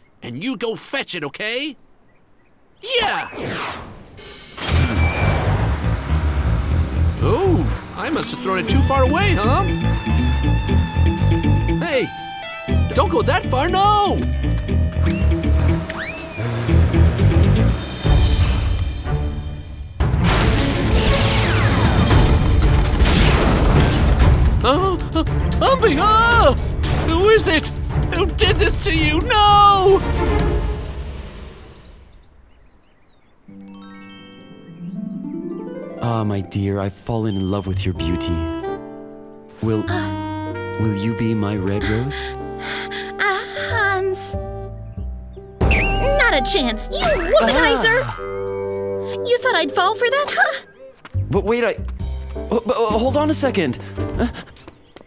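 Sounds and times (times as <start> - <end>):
soft music with tinkling chimes: 33.5 - 38.4, 47.4 - 50.8.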